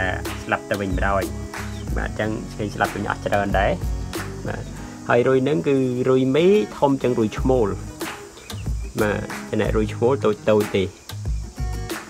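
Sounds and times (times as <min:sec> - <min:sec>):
person speaking: 0:00.0 - 0:07.9
high insect drone: 0:00.0 - 0:12.0.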